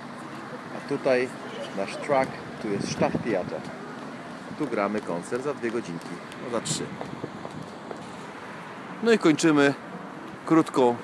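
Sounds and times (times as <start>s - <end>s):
distant road traffic: 0.0s - 11.0s.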